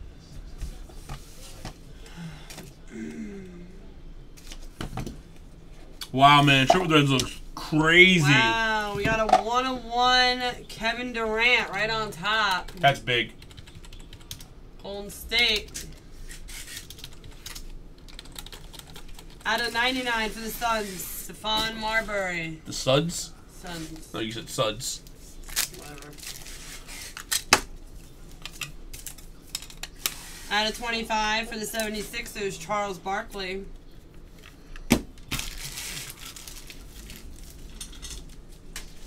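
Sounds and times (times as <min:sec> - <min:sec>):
crinkly rustling: 0:35.3 - 0:39.0.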